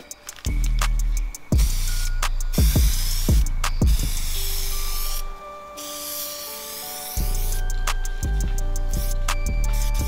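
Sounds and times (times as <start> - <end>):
background music: 0.0 - 10.0
aerosol spray paint hissing: 0.1 - 10.0.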